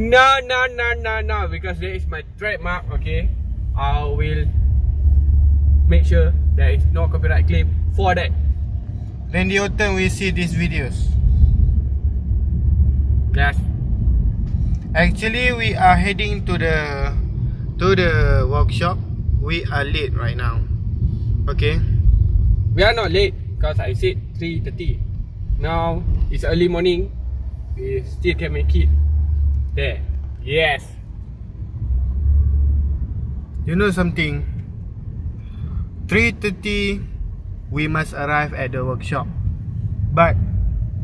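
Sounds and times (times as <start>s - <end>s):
car engine rumble: 0.0s - 41.0s
road noise: 0.0s - 41.0s.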